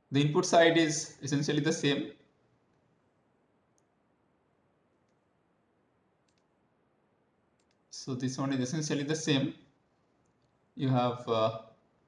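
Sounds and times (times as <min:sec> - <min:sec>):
computer mouse clicks: 0:06.2 - 0:06.6, 0:07.5 - 0:07.9.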